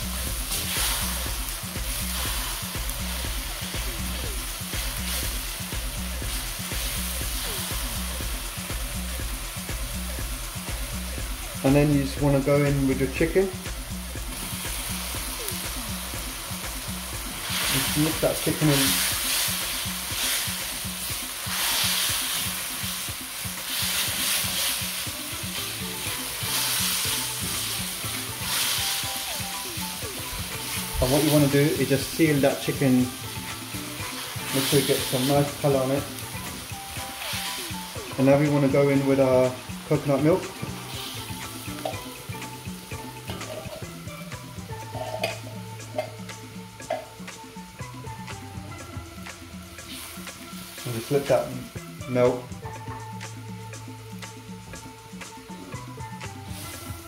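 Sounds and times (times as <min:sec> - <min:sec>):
spatula scraping wok: 0:00.0 - 0:09.6, 0:14.3 - 0:38.3
food sizzling in a wok: 0:00.0 - 0:57.0.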